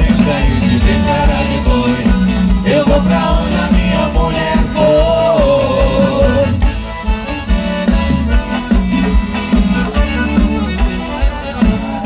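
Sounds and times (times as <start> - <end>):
accordion: 0.0 - 12.0
live band playing: 0.0 - 12.0.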